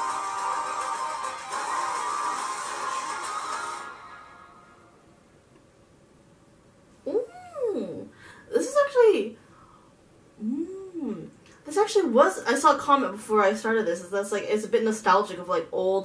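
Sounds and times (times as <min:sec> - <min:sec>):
pop song: 0:00.0 - 0:04.7.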